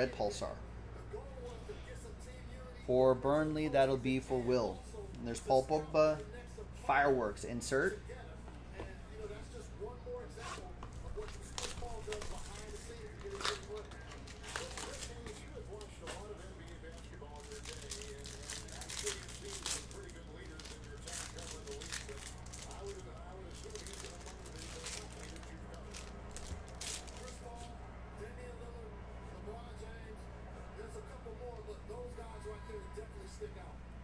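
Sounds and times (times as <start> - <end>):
steady low hum: 0.0 - 34.0
plastic wrappers crinkling: 10.9 - 27.7.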